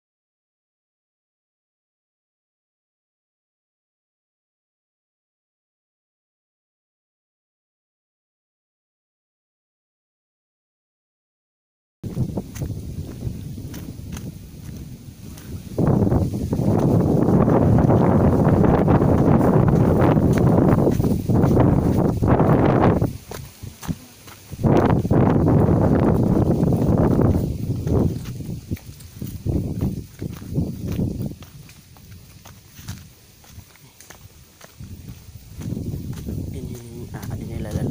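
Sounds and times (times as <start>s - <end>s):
footsteps crunching on leafy dirt: 12.0s - 37.9s.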